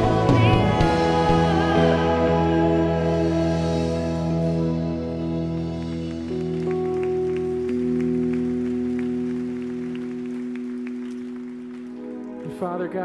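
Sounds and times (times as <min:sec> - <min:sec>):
keyboard pad chords: 0:00.0 - 0:13.0
congregation clapping: 0:05.5 - 0:13.0.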